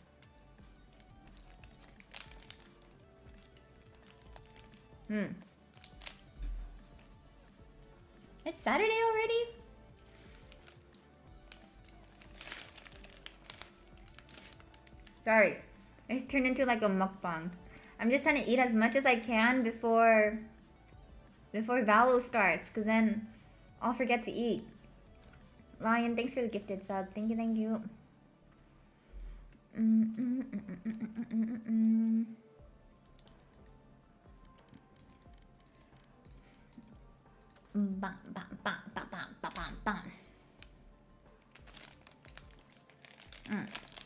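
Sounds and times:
quiet background music: 0.0s - 44.0s
paper sleeve crinkling: 1.3s - 5.0s, 5.8s - 6.3s, 10.3s - 15.3s, 41.5s - 44.0s
woman humming a tune: 5.1s - 5.5s, 29.7s - 32.5s.

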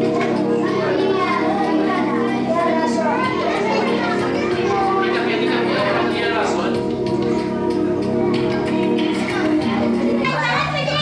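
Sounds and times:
children chattering and calling out: 0.0s - 11.0s
party music: 0.0s - 11.0s.

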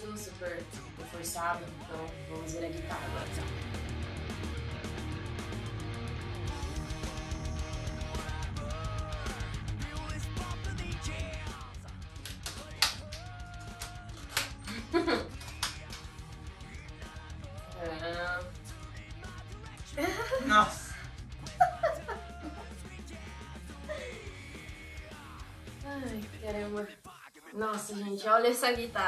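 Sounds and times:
background music: 0.0s - 29.0s
woman exclaiming: 20.0s - 21.0s, 25.9s - 26.8s.

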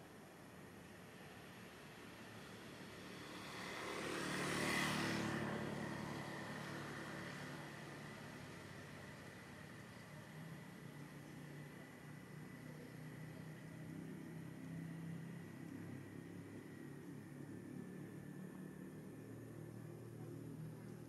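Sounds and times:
motor vehicle passing by: 2.4s - 11.6s.

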